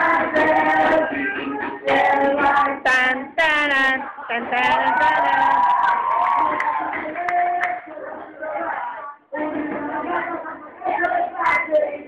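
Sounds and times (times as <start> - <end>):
young voices singing: 0.0 - 12.0.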